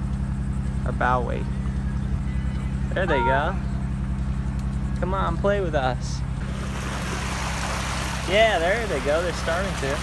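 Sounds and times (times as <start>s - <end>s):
boat engine humming: 0.0s - 10.0s
wind: 0.0s - 10.0s
water rushing: 6.4s - 10.0s.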